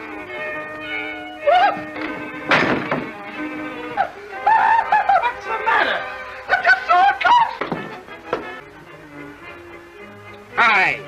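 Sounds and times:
film background score: 0:00.0 - 0:11.0
loud thunk of a blow: 0:02.5 - 0:03.1.

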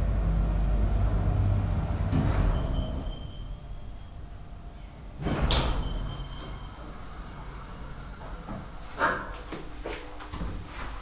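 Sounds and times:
low hum: 0:00.0 - 0:08.8
sliding doors opening with clack: 0:01.8 - 0:04.0, 0:05.2 - 0:10.8.

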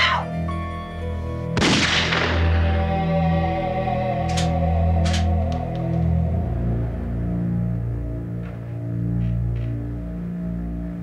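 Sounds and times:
dark sustained background music: 0:00.0 - 0:11.0
gunshot: 0:01.6 - 0:02.6.

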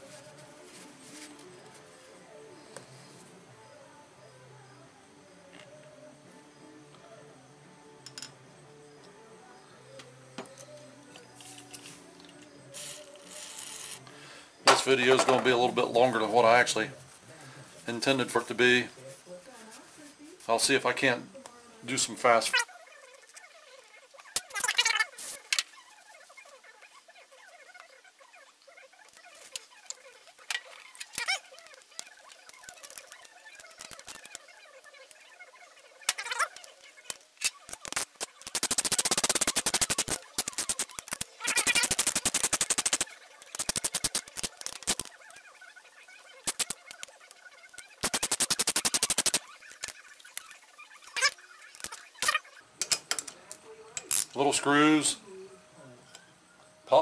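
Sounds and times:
ratchet tool clicking: 0:37.8 - 0:45.1, 0:48.0 - 0:49.9.

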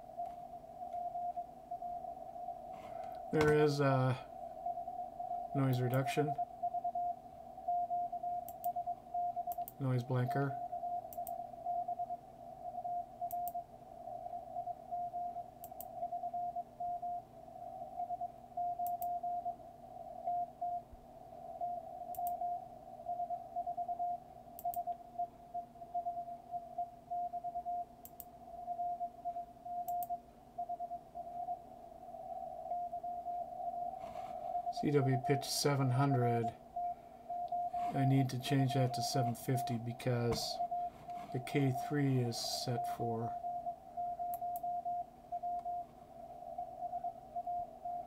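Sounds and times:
faint radio hiss: 0:00.0 - 0:48.0
faint clicks: 0:00.2 - 0:01.4, 0:08.3 - 0:09.8, 0:10.9 - 0:11.9, 0:12.9 - 0:13.6, 0:14.9 - 0:16.2, 0:18.8 - 0:19.2, 0:21.6 - 0:22.6, 0:24.6 - 0:25.0, 0:27.2 - 0:28.3, 0:29.3 - 0:30.2, 0:36.8 - 0:39.7, 0:44.1 - 0:45.8
morse code tone: 0:32.7 - 0:45.9.

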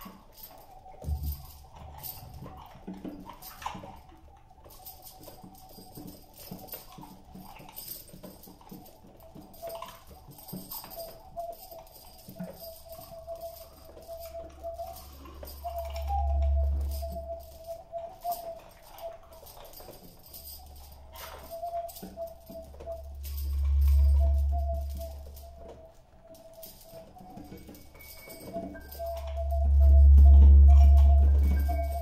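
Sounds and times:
small percussive taps and jingles: 0:00.0 - 0:32.0
held wavering tone: 0:01.0 - 0:02.6, 0:08.8 - 0:32.0
low swell: 0:14.8 - 0:17.6, 0:22.9 - 0:25.5, 0:29.0 - 0:32.0.

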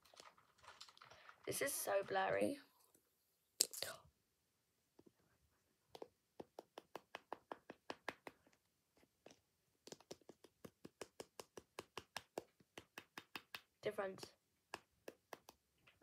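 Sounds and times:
fingernails tapping on chocolate egg: 0:05.9 - 0:08.6, 0:09.2 - 0:13.7, 0:14.7 - 0:15.6.

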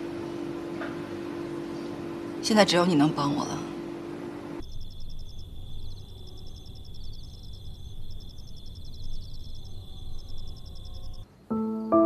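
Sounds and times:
constant low rumble: 0:00.0 - 0:11.3
insects chirping: 0:04.6 - 0:11.3.

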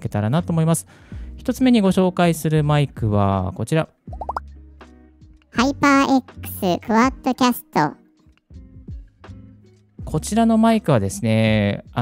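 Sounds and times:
person speaking: 0:05.6 - 0:08.0.

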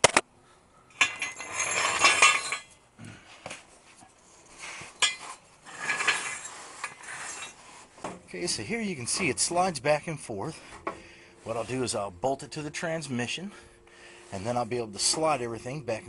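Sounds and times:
metal scraping with clinks: 0:00.9 - 0:02.8, 0:04.3 - 0:09.6.

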